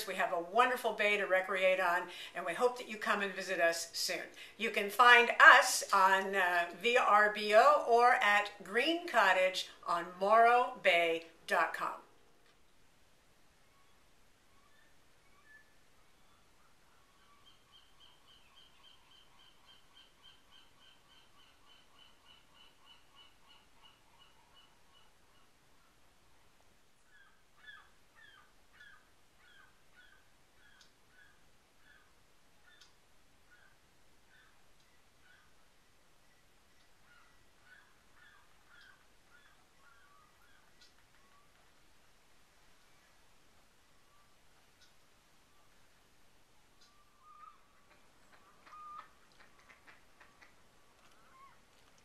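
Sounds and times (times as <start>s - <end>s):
faint bird chirps: 13.5s - 41.7s, 44.0s - 46.0s, 46.6s - 51.7s.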